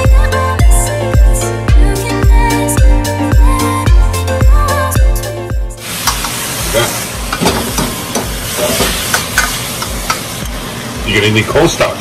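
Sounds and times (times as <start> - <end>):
metal ladle scraping wok: 5.8 - 10.4
food sizzling in a wok: 5.8 - 11.0.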